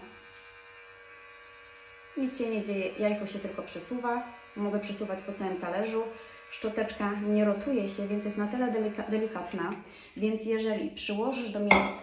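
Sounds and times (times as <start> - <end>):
facial cleansing brush buzzing: 0.0 - 9.8.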